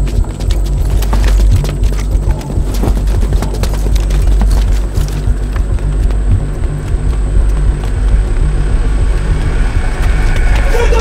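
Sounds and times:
footsteps on concrete: 0.0 - 10.7
low rumble: 0.0 - 11.0.

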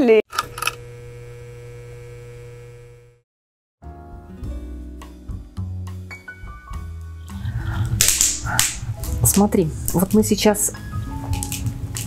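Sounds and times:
low electrical hum: 0.4 - 3.2.

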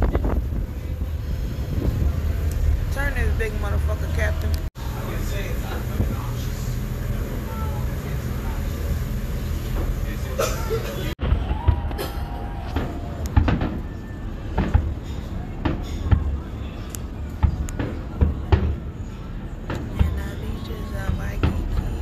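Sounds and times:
low rumble: 0.0 - 10.1
fireworks bangs: 11.2 - 16.4.

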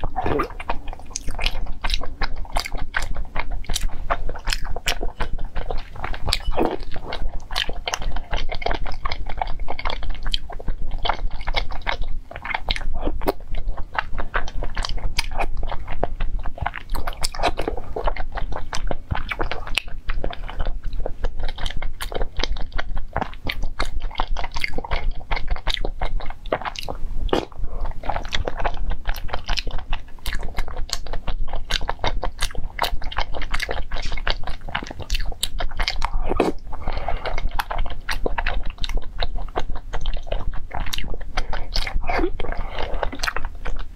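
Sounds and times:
person chewing wetly: 0.0 - 43.9.

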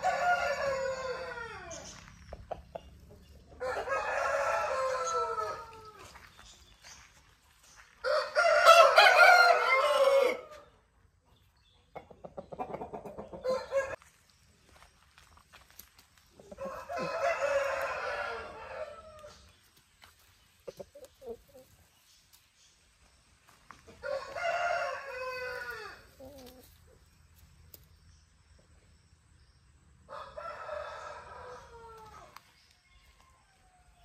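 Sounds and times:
roosters crowing: 0.0 - 2.3, 3.5 - 6.2, 8.0 - 10.7, 13.1 - 14.0, 16.4 - 19.5, 23.9 - 26.6, 30.0 - 32.4.

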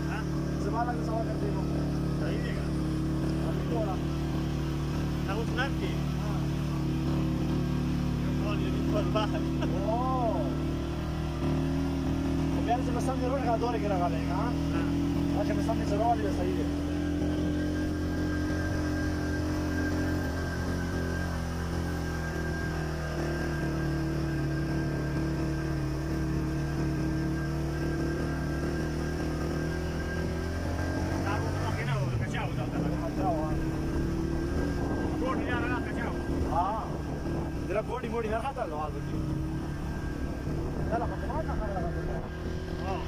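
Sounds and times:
voices: 0.0 - 22.0, 30.8 - 43.0
vehicle engine drone: 0.0 - 43.0.

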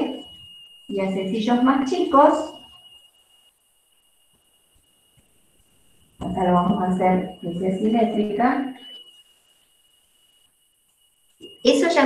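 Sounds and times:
faint high steady tone: 0.0 - 12.0.

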